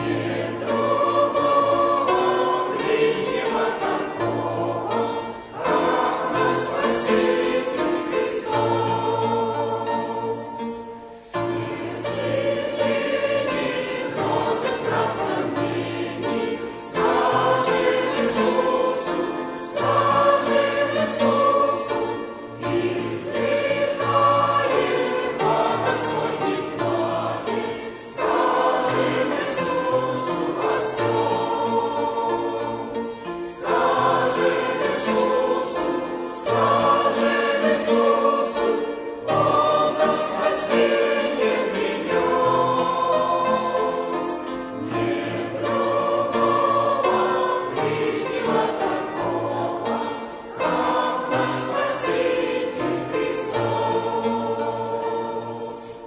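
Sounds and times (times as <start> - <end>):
congregation and choir singing a hymn: 0.0 - 56.0.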